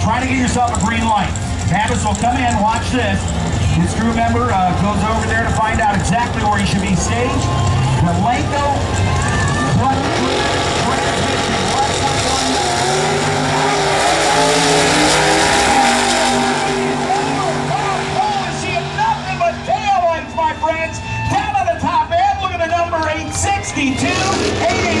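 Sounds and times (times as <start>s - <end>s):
announcer's voice: 0.0s - 25.0s
drag car engines racing: 0.0s - 25.0s.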